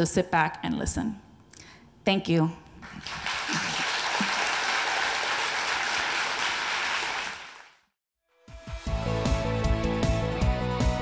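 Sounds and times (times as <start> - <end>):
audience applauding: 2.8 - 7.9
music: 8.2 - 11.0.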